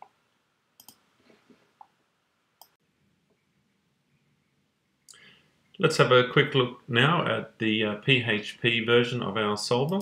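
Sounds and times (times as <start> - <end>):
faint computer mouse clicks: 0.8 - 1.0.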